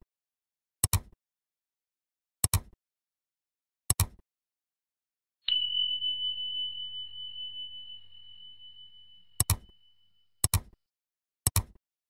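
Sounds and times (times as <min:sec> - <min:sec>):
bell-like ding: 0:05.5 - 0:10.4.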